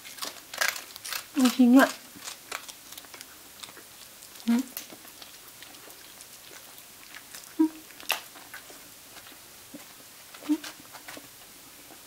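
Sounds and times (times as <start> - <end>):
small dog low vocal sounds: 7.5 - 7.9.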